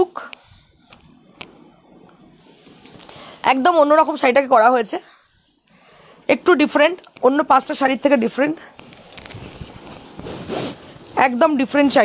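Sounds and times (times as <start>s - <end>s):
silk fabric rustling and swishing: 2.3s - 3.5s, 8.0s - 12.0s.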